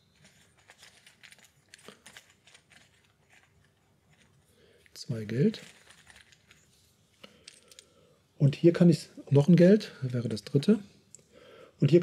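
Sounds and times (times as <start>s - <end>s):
game pieces rustling and clicking: 0.0s - 7.9s.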